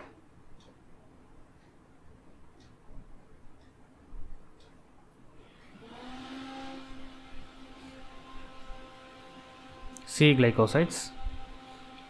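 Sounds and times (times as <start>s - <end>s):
small motor humming: 5.4s - 12.0s.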